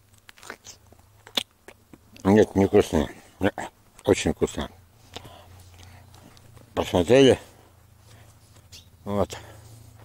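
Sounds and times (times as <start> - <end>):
man chewing a pear: 0.0 - 2.4.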